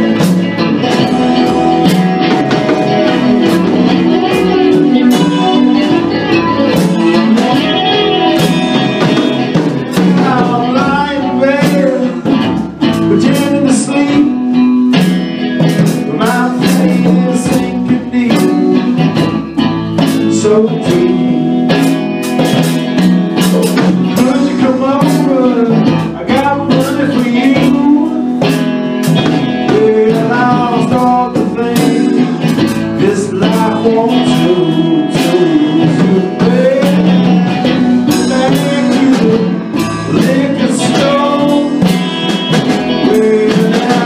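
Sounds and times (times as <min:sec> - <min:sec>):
electric guitar: 0:00.0 - 0:44.0
person singing: 0:00.0 - 0:44.0
steady drum beat: 0:00.0 - 0:44.0.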